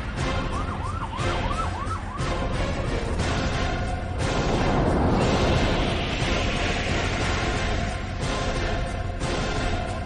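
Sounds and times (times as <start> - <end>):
siren wailing: 0.0 - 2.8
loud theme music: 0.2 - 10.0.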